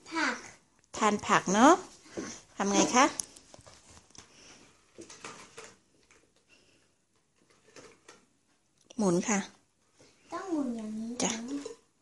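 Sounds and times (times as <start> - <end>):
girl speaking: 0.0 - 0.5, 10.3 - 11.7
faint scattered noise: 0.0 - 12.0.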